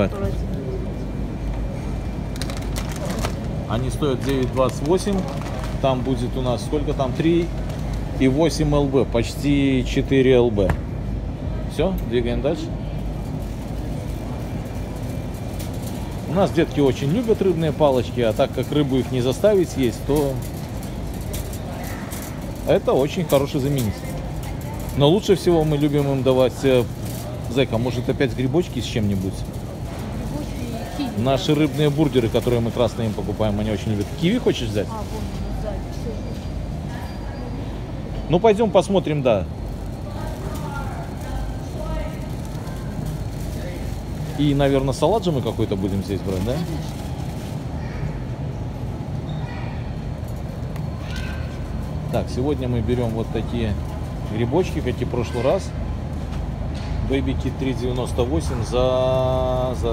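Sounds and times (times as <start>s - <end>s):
faint voices: 0.0s - 59.9s
shopping cart rolling on concrete: 2.3s - 10.5s, 12.2s - 49.2s, 49.8s - 56.5s.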